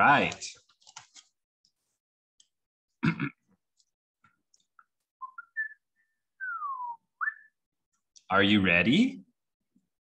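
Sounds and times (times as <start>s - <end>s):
person whistling: 5.2s - 7.6s.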